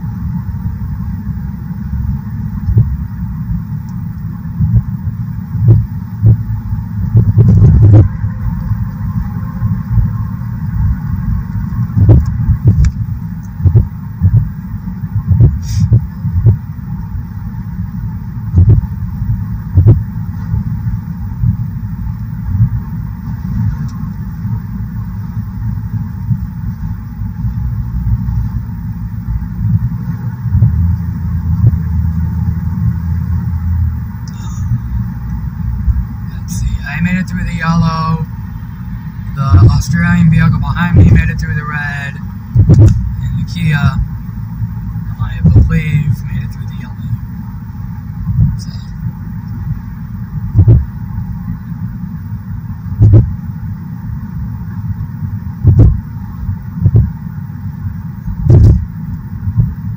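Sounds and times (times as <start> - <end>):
tyre and road rumble: 0.0 - 59.9
knocks and thumps: 7.2 - 8.2, 42.6 - 43.1, 50.6 - 50.8, 53.0 - 53.3, 55.6 - 56.0, 58.4 - 58.8.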